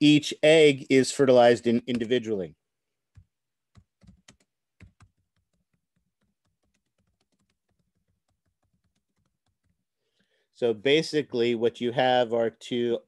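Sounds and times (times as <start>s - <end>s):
computer keyboard typing: 3.1s - 9.8s.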